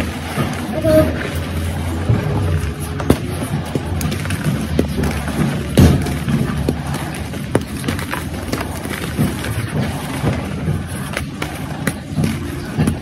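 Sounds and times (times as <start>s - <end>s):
low background rumble: 0.0s - 11.8s.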